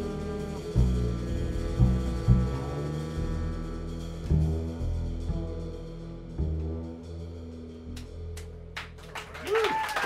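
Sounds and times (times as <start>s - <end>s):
jazz band sustained horns: 0.0s - 9.2s
upright bass: 0.0s - 9.2s.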